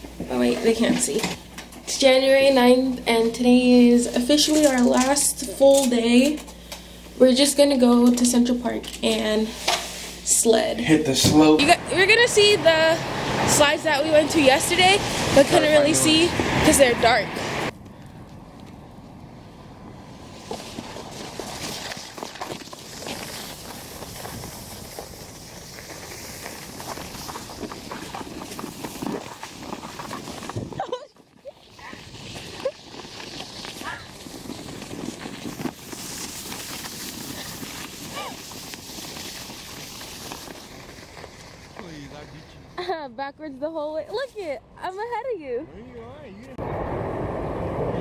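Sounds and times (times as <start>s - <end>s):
sled scraping on snow: 11.4s - 17.7s, 20.2s - 42.8s.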